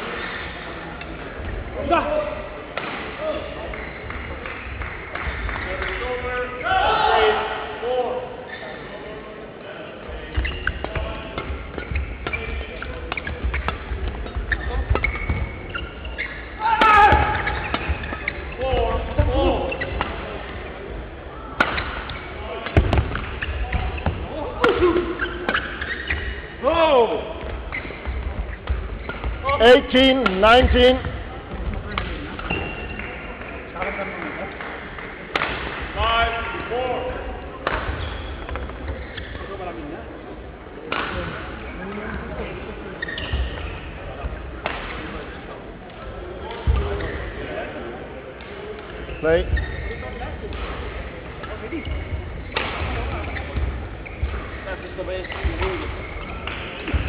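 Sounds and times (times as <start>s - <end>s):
echoing play in hall: 0.0s - 57.0s
shoes squeaking on court: 8.4s - 9.0s, 10.1s - 20.9s, 21.6s - 26.6s, 27.4s - 33.8s, 37.7s - 39.9s, 41.1s - 45.6s, 48.7s - 57.0s
players shouting: 16.6s - 17.7s
racket striking shuttlecock: 37.6s - 38.0s.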